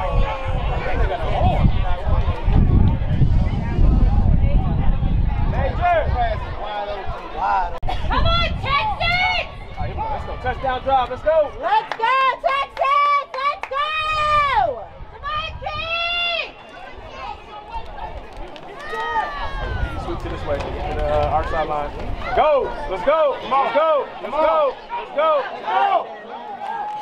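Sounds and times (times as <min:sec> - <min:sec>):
wind rumbling on microphone: 0:00.0 - 0:11.6, 0:13.9 - 0:22.9
people shouting and yelling: 0:00.0 - 0:27.0.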